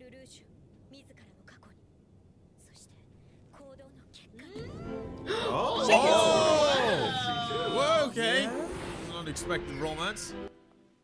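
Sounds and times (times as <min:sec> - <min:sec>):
music: 0:04.6 - 0:11.0.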